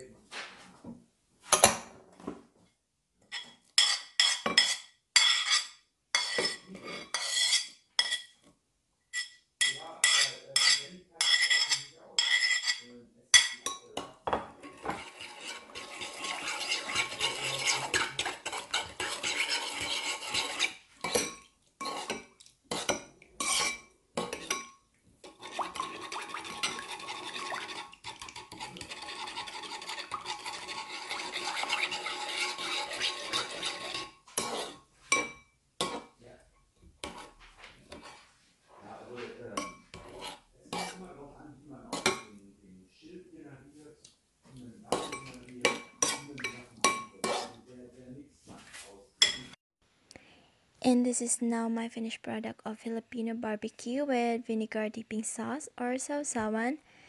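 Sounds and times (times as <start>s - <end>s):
metal spoon clinking on dishes: 3.3s - 8.4s, 9.1s - 30.7s, 33.0s - 36.1s, 41.9s - 42.4s, 44.9s - 47.5s, 49.2s - 49.6s
spoon scraping ceramic bowl: 3.3s - 8.4s, 9.1s - 36.2s, 37.0s - 38.4s, 39.6s - 41.1s, 41.9s - 42.4s, 44.9s - 47.6s.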